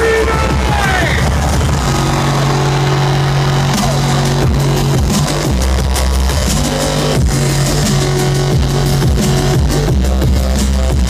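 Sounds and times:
loud electronic bass music: 0.0 - 11.0.

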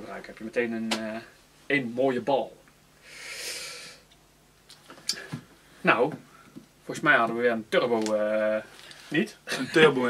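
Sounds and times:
breathy nasal exhale: 3.0 - 4.1.

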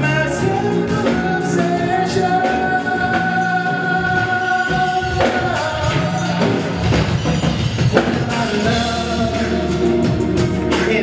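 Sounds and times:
man singing: 0.0 - 11.0
pop-rock band playing: 0.0 - 11.0.

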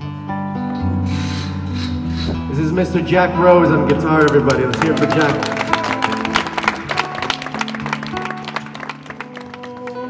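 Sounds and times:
people clapping: 3.8 - 10.0.

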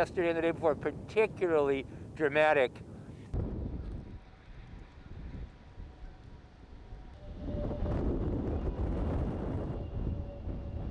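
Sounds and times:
wind rumbling on microphone: 0.0 - 10.9.

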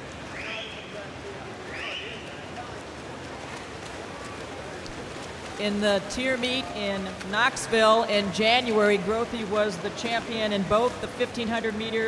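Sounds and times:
swimmers splashing: 0.0 - 12.0.

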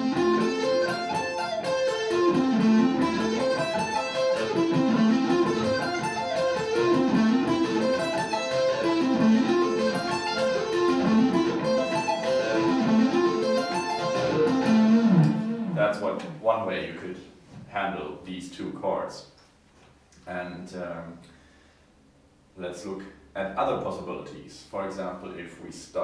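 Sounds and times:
electric guitar arpeggios: 0.0 - 16.4.

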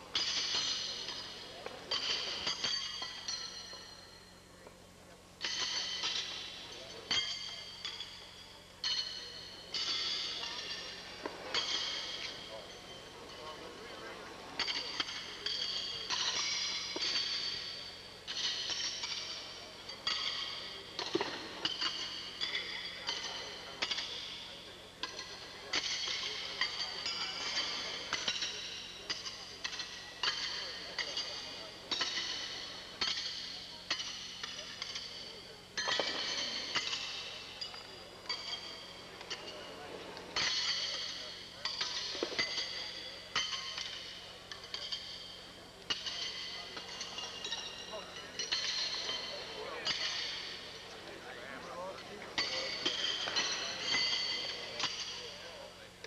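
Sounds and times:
horseshoes clanging on metal: 0.0 - 4.3, 5.4 - 56.0.

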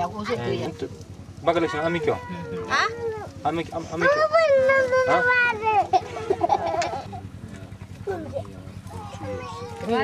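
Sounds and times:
interview speech: 0.0 - 10.0
low steady hum: 0.0 - 10.0.

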